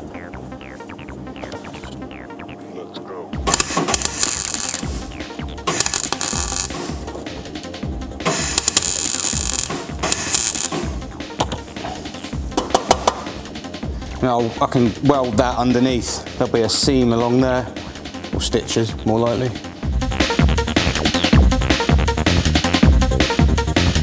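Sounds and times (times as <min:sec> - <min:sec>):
mig welding crackling: 0:03.4 - 0:07.1, 0:08.3 - 0:11.0.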